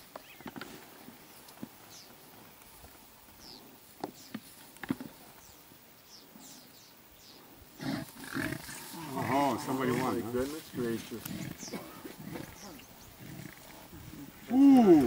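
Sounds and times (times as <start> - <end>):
low rough animal sound: 7.8 - 15.0.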